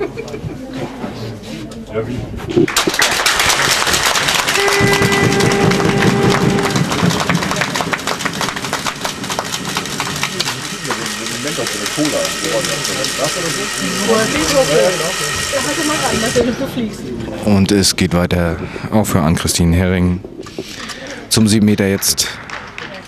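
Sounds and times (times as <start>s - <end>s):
spectators clapping: 2.6s - 16.5s, 20.6s - 23.0s
horn blast: 4.2s - 16.7s.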